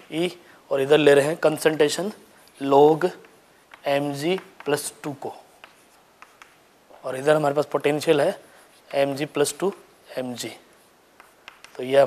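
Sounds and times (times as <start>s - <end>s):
chalk scratching on chalkboard: 2.0s - 6.6s, 8.1s - 12.0s
chalk tapping on chalkboard: 2.9s - 6.7s, 8.7s - 10.0s, 10.8s - 12.0s.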